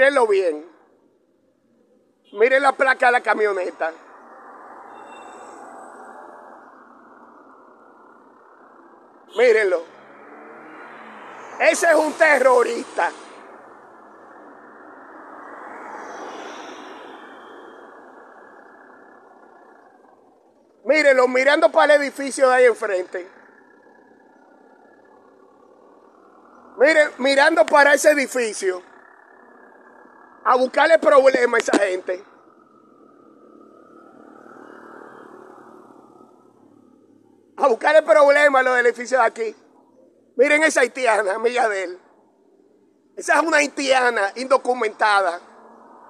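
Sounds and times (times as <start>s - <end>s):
vehicle driving past: 3.4s - 40.4s, 44.5s - 46.0s.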